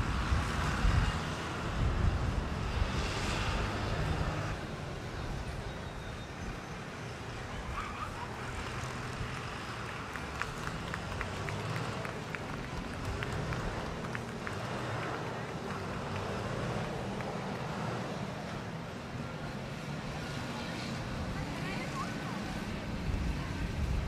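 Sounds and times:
faint distant voices: 0.1s - 24.0s.

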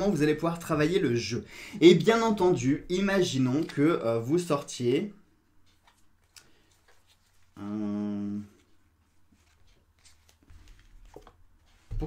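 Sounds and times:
cards being leafed through: 9.1s - 12.0s.

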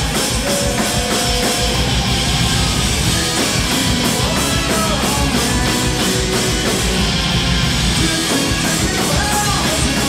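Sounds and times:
drum kit: 0.0s - 10.0s
electric guitars: 0.0s - 10.0s
keyboards: 0.0s - 10.0s.

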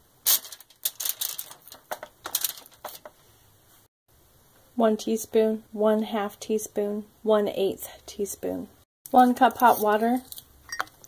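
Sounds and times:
aluminium foil crinkling: 0.3s - 3.1s.

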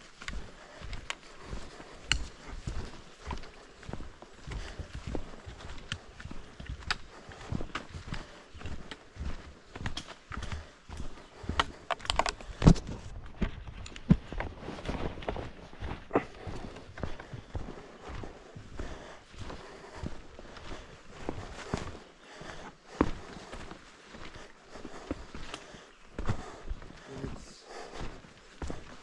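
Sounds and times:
boots walking on rocky trail: 0.0s - 29.0s.

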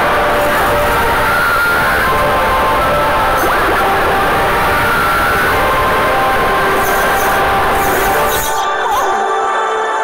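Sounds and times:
loud dense cartoon music: 0.1s - 10.0s.

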